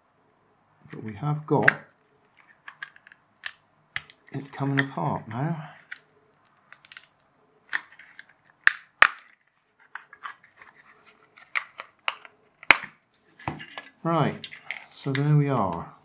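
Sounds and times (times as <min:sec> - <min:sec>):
plastic casing clicking and creaking: 0:01.6 - 0:05.0, 0:05.7 - 0:15.8
sharp plastic cracks: 0:05.8 - 0:10.2, 0:11.4 - 0:13.0.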